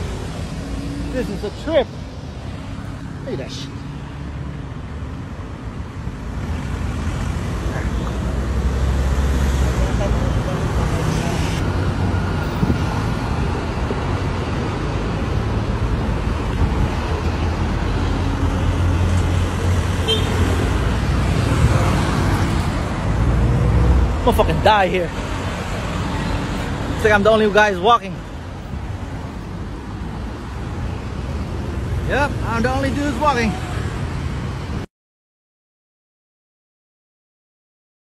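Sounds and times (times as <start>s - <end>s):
road traffic passing: 0.0s - 34.9s.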